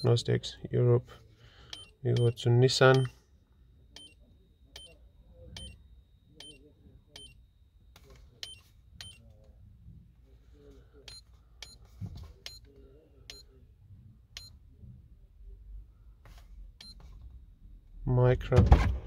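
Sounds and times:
button press click-beeps: 1.7 - 3.1.

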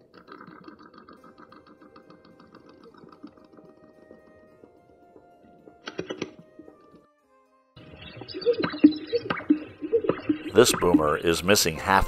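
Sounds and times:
grouse air-sac popping: 0.0 - 7.1, 7.9 - 11.5.

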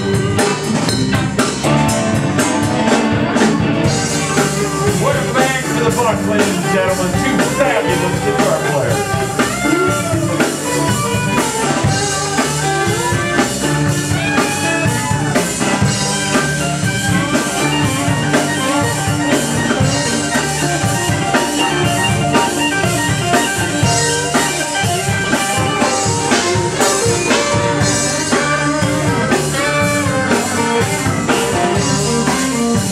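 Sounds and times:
drum kit: 0.0 - 32.9
electric guitar lead: 0.0 - 32.9
rhythm guitars: 0.0 - 32.9.

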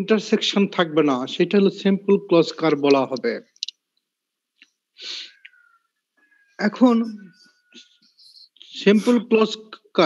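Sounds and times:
burst of breath: 5.0 - 5.8.

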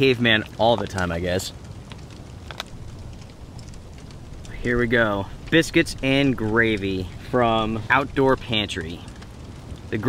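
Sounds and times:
soft ticks: 0.2 - 10.0.

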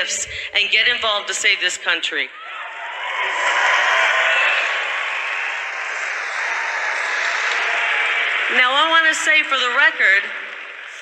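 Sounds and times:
crowd applauding and cheering: 2.4 - 11.0.

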